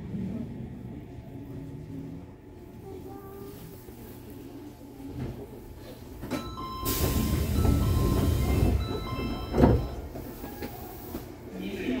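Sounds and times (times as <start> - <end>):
train running rumble: 6.2 - 11.5.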